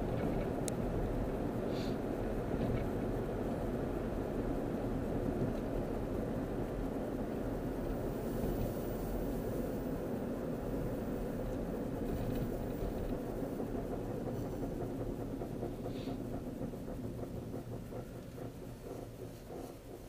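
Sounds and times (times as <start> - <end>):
car cabin road and engine noise: 0.0 - 20.0.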